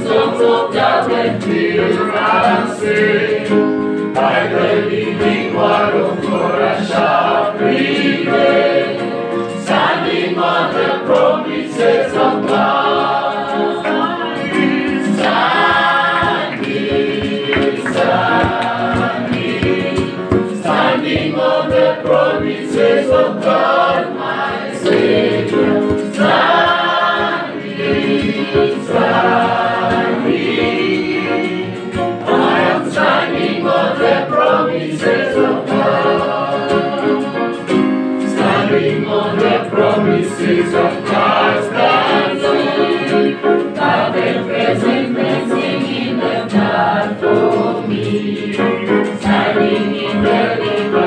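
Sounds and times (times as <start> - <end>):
choir singing gospel: 0.0 - 51.0.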